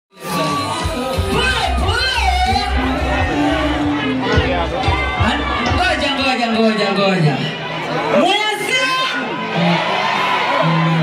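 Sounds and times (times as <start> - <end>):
crowd cheering and shouting: 0.1 - 11.0
loud music through pa system: 0.1 - 11.0
heavy bass beat: 0.7 - 6.4.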